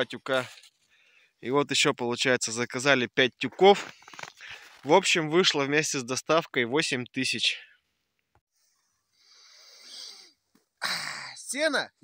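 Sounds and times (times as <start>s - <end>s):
sharp breath: 8.7s - 10.4s
man sniffing inhale: 9.2s - 10.4s.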